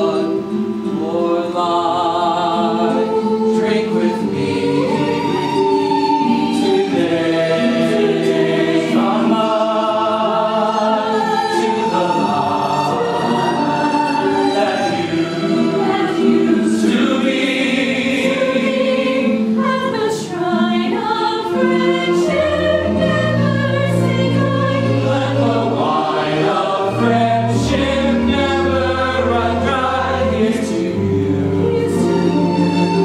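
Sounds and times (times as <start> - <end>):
cast singing in chorus: 0.0 - 33.0.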